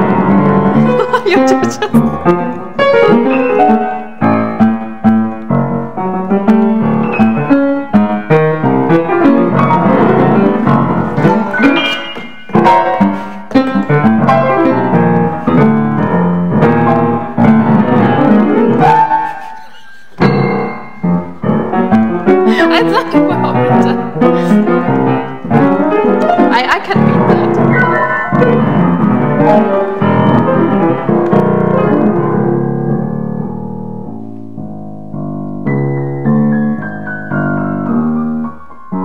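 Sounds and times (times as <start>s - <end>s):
grand piano improvisation: 0.0s - 39.0s.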